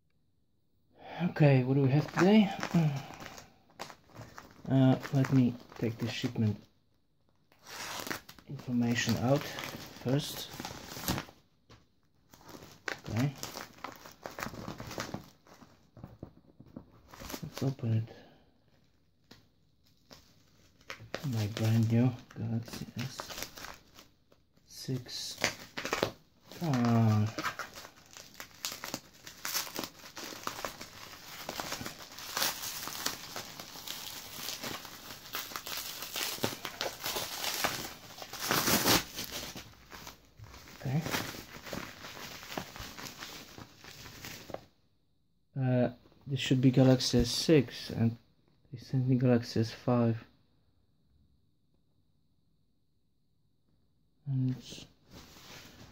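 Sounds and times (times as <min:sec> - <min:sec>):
plastic packaging crinkling and tearing: 0:01.9 - 0:06.3, 0:07.5 - 0:11.4, 0:12.3 - 0:17.9, 0:19.2 - 0:24.1, 0:24.9 - 0:44.6
plastic wrap rustling: 0:01.9 - 0:06.6, 0:07.5 - 0:11.4, 0:12.3 - 0:17.8, 0:19.8 - 0:24.4, 0:25.0 - 0:44.7, 0:55.0 - 0:55.9.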